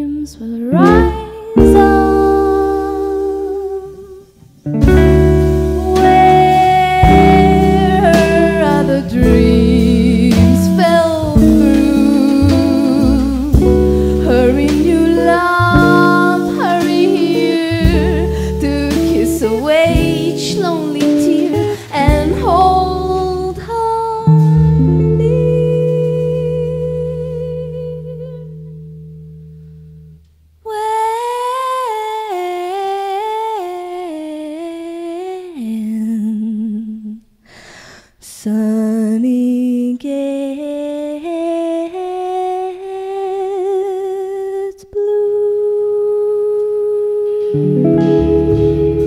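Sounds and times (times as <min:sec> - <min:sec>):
woman humming a melody: 0:00.0 - 0:04.4, 0:05.7 - 0:28.7, 0:41.1 - 0:49.0.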